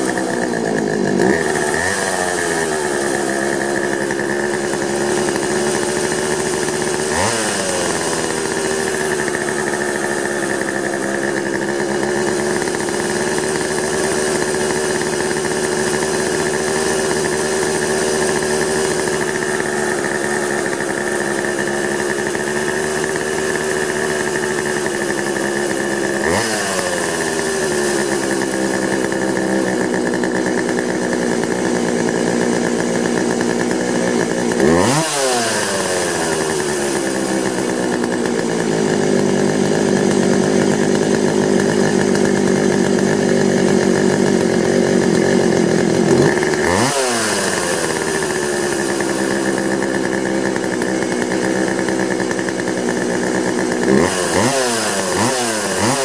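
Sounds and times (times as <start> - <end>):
chainsaw engine running: 0.0 - 56.0.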